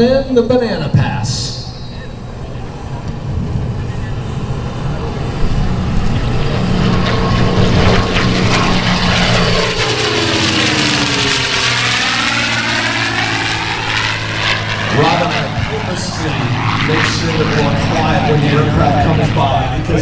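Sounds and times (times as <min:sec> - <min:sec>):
propeller plane engine passing: 0:00.0 - 0:20.0.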